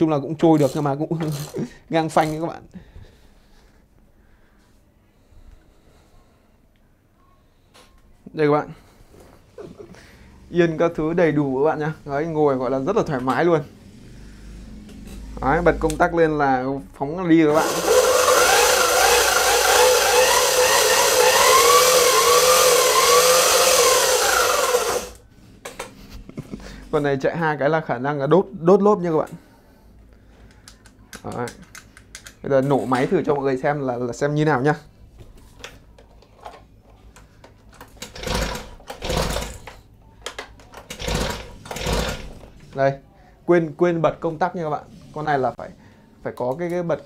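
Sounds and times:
electric motor whining: 17.5s - 25.2s
engine pull-start cranking whir: 17.5s - 25.2s, 38.0s - 39.8s, 40.8s - 42.4s.

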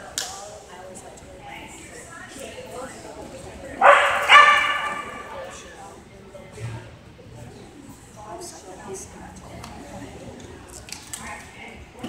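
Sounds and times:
dog barking: 3.8s - 5.3s.

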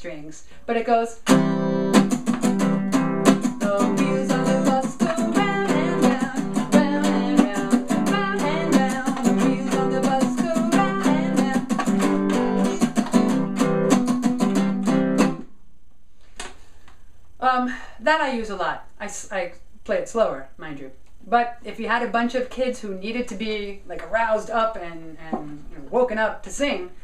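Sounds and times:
acoustic guitar strumming: 1.2s - 15.5s.

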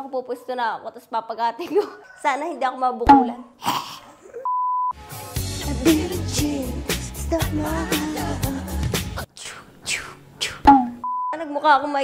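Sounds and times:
upbeat pop music with drum beat: 5.1s - 9.3s.

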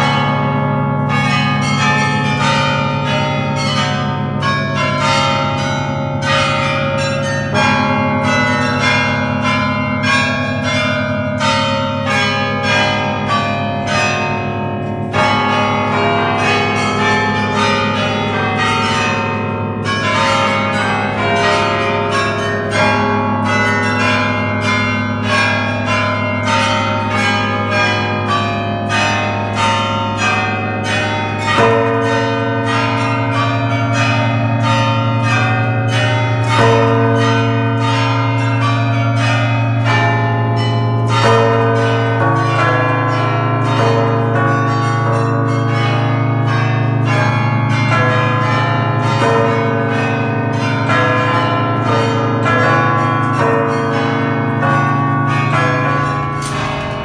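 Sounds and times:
carillon bells melody: 0.0s - 57.0s
deep bass bell ringing: 0.0s - 57.0s
low hum of heavy bells: 0.0s - 57.0s.

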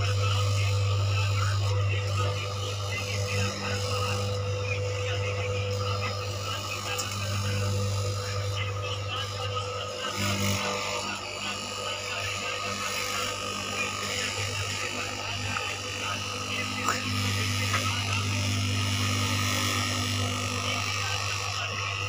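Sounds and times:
electric cutting machine humming: 0.0s - 22.0s.

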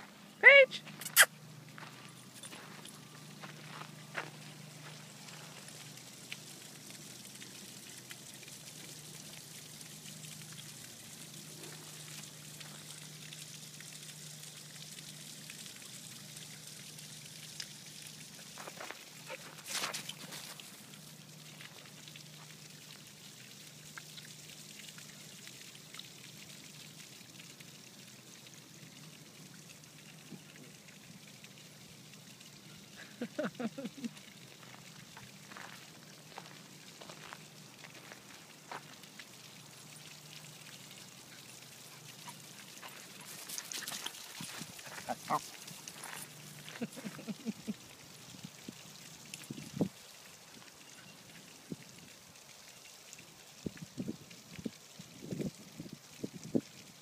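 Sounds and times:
steady outdoor hiss: 0.0s - 57.0s.

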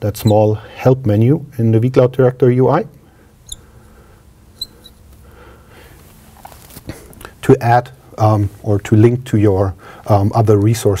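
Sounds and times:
marker squeaking on glass: 3.4s - 3.7s, 4.5s - 5.1s.

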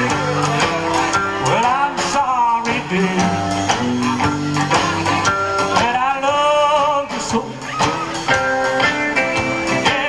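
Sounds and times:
electric guitar: 0.0s - 10.0s
rockabilly band playing: 0.0s - 10.0s.

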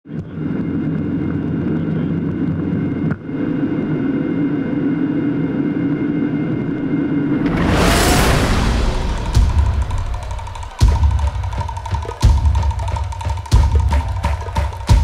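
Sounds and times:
jet engine rumble: 3.6s - 11.1s
loud rising whoosh: 7.2s - 11.2s.

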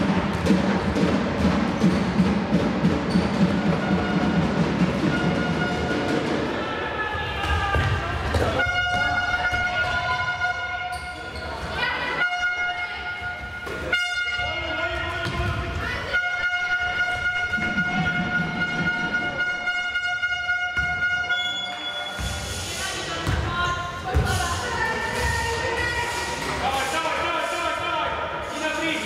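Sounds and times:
steady horn-like tone: 16.1s - 21.7s
voices: 21.4s - 29.0s.

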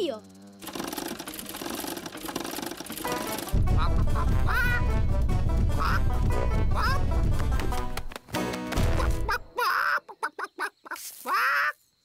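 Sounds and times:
cartoon hen clucking: 3.7s - 4.9s, 5.8s - 6.1s, 6.7s - 7.0s, 9.0s - 11.8s.

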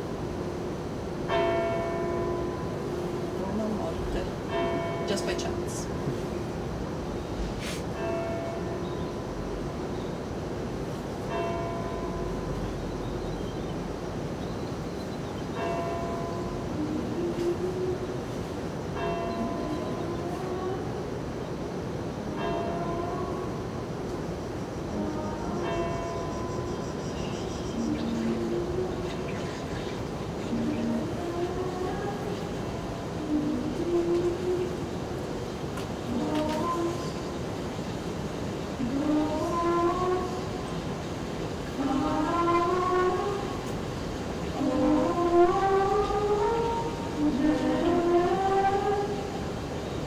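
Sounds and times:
slow gliding film music: 8.1s - 37.5s, 38.6s - 50.0s.

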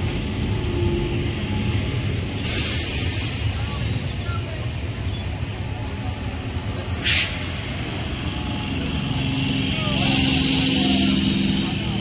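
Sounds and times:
air brake hiss: 2.4s - 4.0s, 6.9s - 7.6s, 10.0s - 11.6s.

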